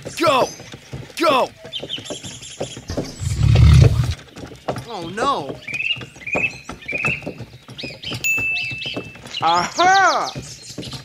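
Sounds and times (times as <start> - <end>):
deep animal roar: 2.9 - 4.2.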